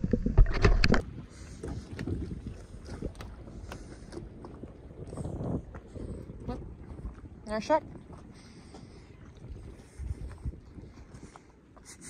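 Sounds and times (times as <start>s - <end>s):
water lapping at hull: 0.0s - 12.0s
wind buffeting microphone: 0.0s - 12.0s.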